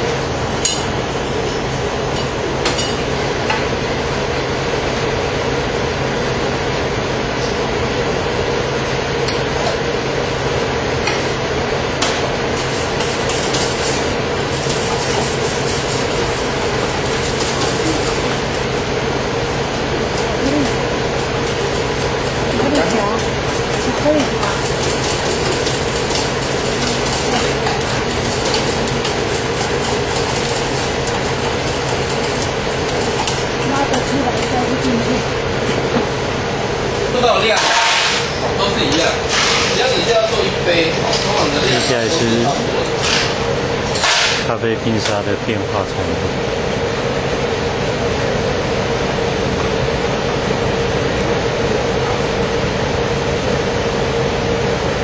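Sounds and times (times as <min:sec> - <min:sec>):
mechanical hum: 0:00.0 - 0:55.0.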